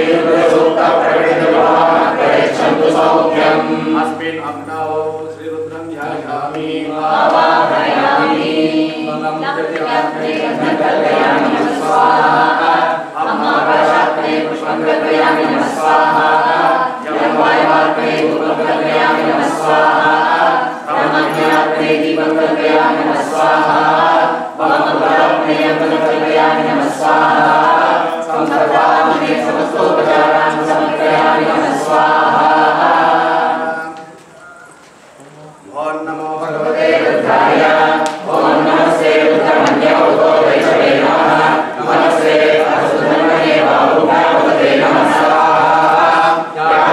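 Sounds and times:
group of voices chanting: 0:00.0 - 0:34.7, 0:36.4 - 0:46.9.

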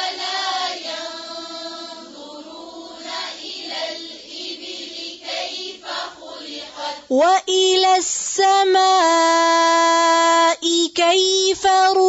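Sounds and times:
group chanting recitation: 0:00.0 - 0:07.2.

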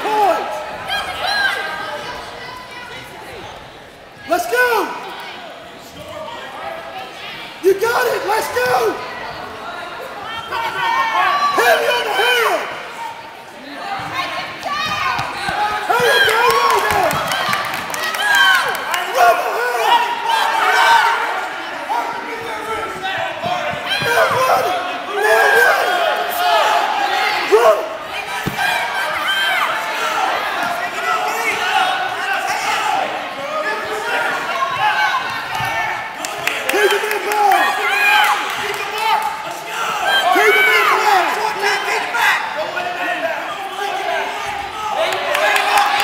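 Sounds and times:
spectators shouting: 0:07.6 - 0:46.0.

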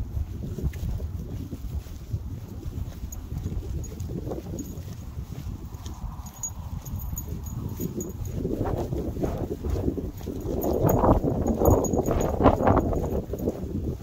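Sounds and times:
soft footsteps: 0:00.0 - 0:14.0
wind buffeting microphone: 0:00.0 - 0:14.0.

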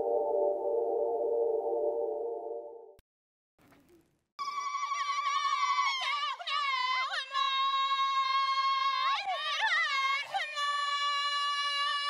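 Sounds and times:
high wavering melodic line: 0:00.0 - 0:02.9
sustained electronic tone: 0:00.0 - 0:02.9.

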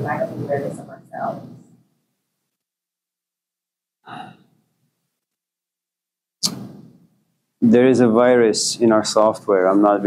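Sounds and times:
man sighing: 0:04.0 - 0:04.5
sharp intake of breath: 0:04.1 - 0:04.5.

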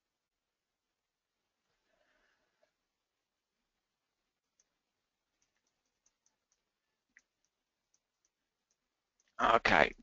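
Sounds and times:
faint clicks: 0:04.4 - 0:09.4.

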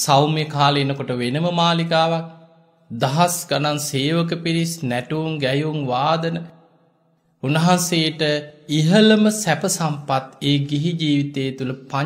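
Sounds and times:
man preaching in sing-song chant: 0:00.0 - 0:06.7, 0:07.4 - 0:12.0.

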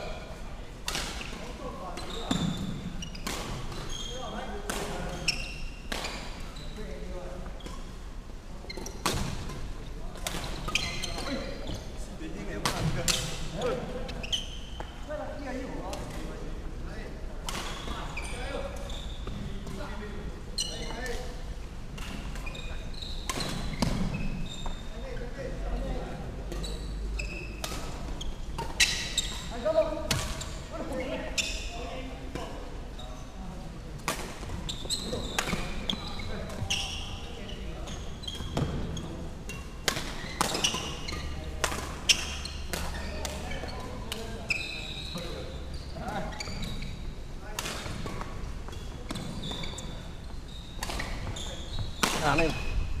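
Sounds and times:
players' voices: 0:24.9 - 0:46.8.

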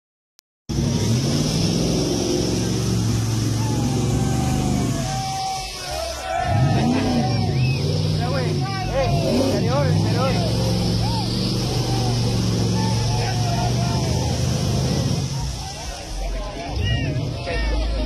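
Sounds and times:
engine revving hard: 0:00.7 - 0:18.0
crowd shouting: 0:01.9 - 0:18.0.

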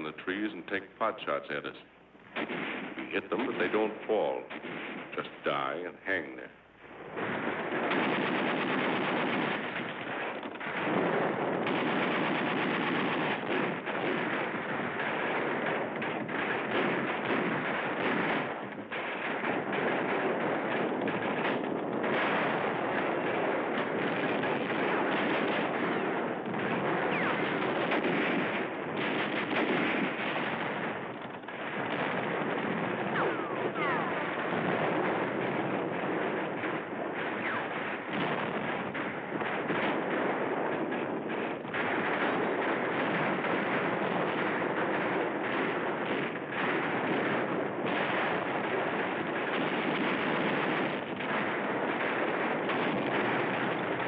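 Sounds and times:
heavy machine-gun fire: 0:02.3 - 0:54.0.

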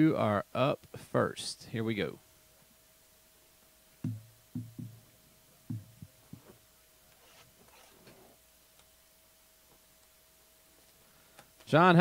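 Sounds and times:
steady electrical hum: 0:00.0 - 0:12.0
dull low thumps: 0:04.0 - 0:05.1, 0:05.7 - 0:06.5.

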